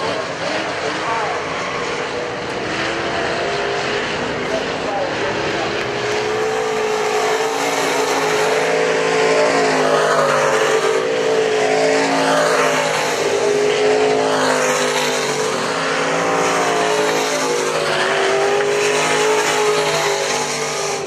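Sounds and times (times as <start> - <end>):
race car engines droning: 0.0 - 21.0.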